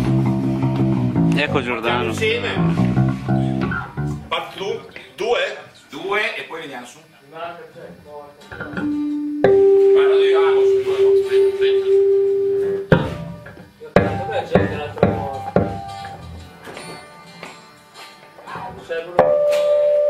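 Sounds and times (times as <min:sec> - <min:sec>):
guitar notes: 0:00.0 - 0:04.3, 0:08.5 - 0:17.6, 0:19.0 - 0:20.0.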